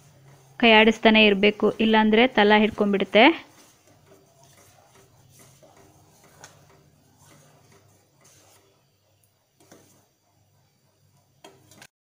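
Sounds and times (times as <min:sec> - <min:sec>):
ladle stirring in steel pot: 0:00.0 - 0:11.9
ladle tapping pot: 0:03.6 - 0:08.8, 0:11.2 - 0:11.9.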